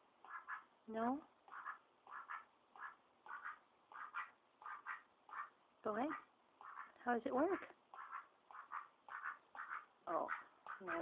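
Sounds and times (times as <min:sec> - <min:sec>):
duck quacking softly: 0:00.2 - 0:00.7, 0:01.5 - 0:11.0.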